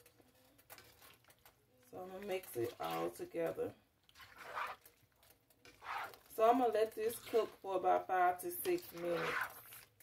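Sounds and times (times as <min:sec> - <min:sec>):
stirring thick sauce in skillet: 0:00.0 - 0:10.0.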